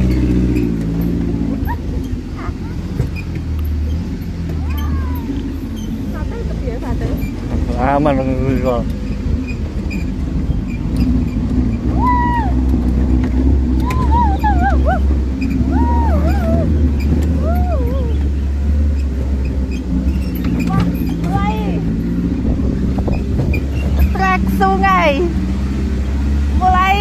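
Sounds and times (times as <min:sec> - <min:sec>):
car engine rumbling: 0:00.0 - 0:27.0
high rising and falling calls: 0:13.7 - 0:19.2.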